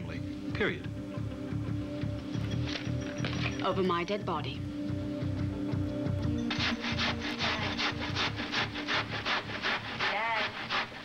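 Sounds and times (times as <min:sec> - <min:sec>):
cabbage grating: 0:06.5 - 0:11.0.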